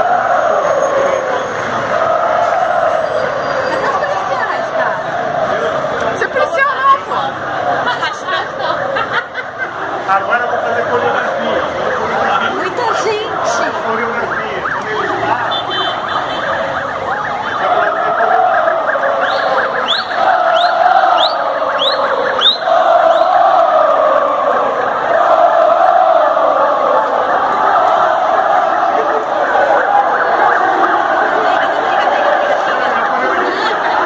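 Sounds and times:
crowd chanting: 0.0 - 34.0.

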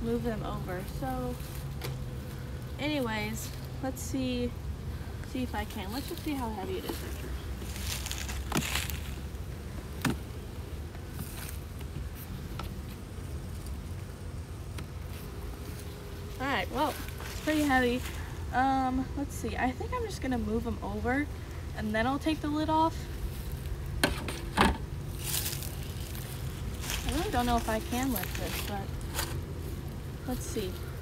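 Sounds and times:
low outdoor rumble: 0.0 - 31.0.

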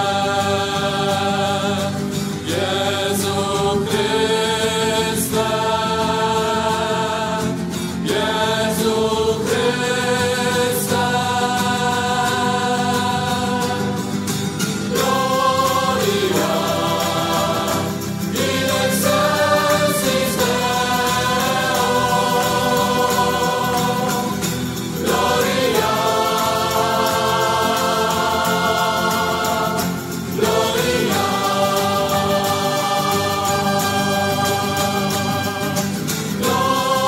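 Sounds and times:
choir singing held chords: 0.0 - 37.0.

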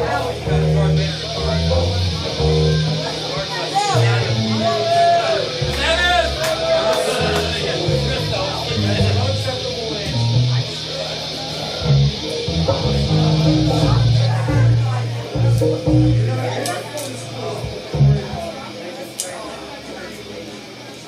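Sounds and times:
electric guitar and bass noodling: 0.0 - 18.5
amplifier hiss: 0.0 - 21.0.

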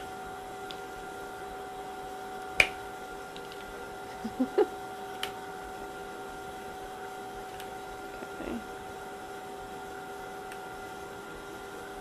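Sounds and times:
lab equipment hum: 0.0 - 12.0.

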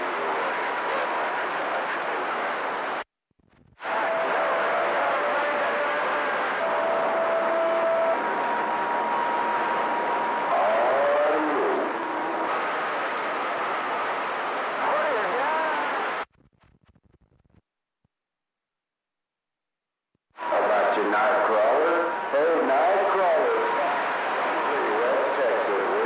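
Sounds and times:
radio static hiss: 0.0 - 17.7, 20.3 - 26.0.

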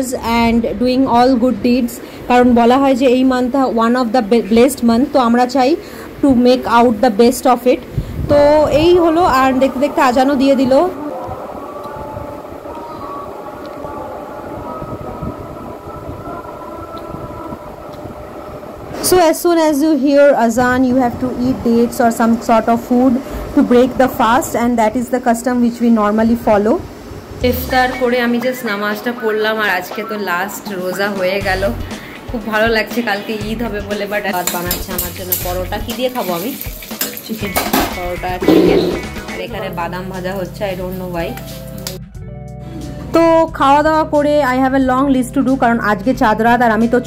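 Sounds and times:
call to prayer over loudspeaker: 8.4 - 15.6
metal utensils scraping in a pan: 34.4 - 39.2.

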